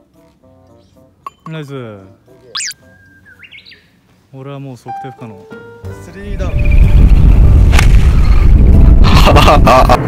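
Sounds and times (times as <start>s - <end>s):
bird chirping and whistling: 2.6s - 3.9s, 6.5s - 7.1s.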